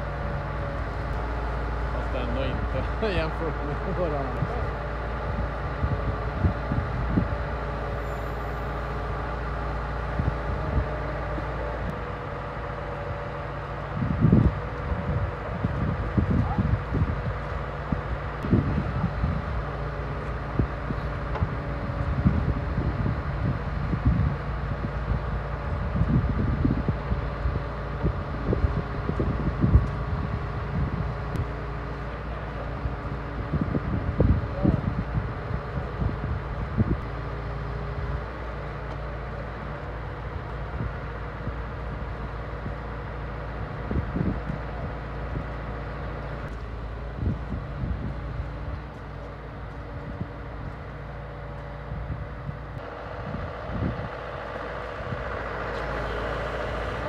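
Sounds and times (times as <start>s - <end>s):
diesel truck engine hum: 0.0s - 57.0s.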